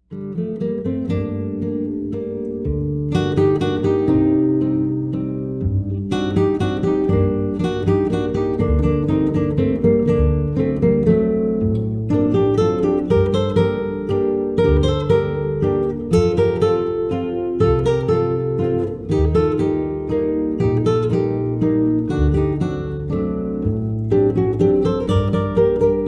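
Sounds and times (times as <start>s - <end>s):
acoustic guitar music: 0.0s - 26.0s.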